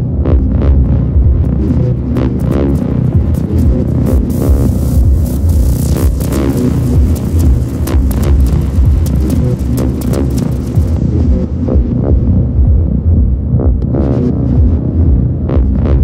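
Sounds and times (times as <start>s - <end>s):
electronic ambient music: 0.0s - 16.0s.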